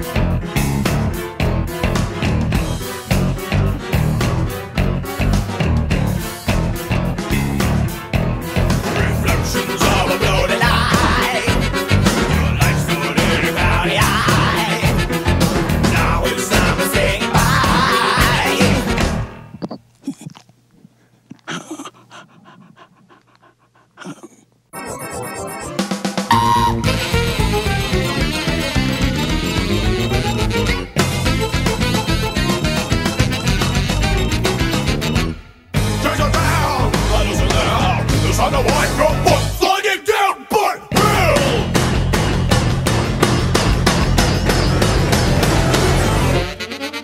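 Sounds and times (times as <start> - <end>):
heavy rock band music: 0.0 - 19.4, 25.7 - 39.7, 40.9 - 46.6
dog panting: 19.6 - 24.6.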